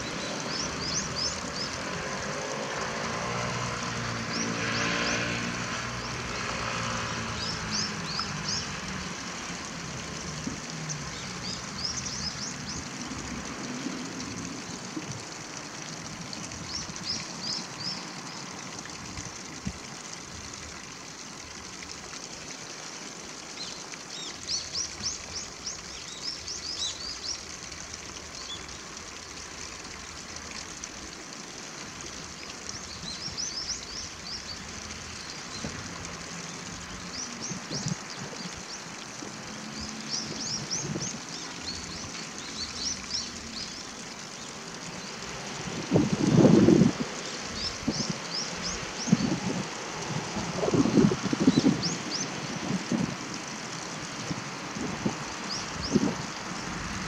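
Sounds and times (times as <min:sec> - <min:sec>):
small birds chirping: 0:00.0 - 0:03.0, 0:10.7 - 0:13.0, 0:23.5 - 0:27.6, 0:32.7 - 0:45.2
stream hiss: 0:00.0 - 0:57.0
vehicle engine drone: 0:00.1 - 0:11.9.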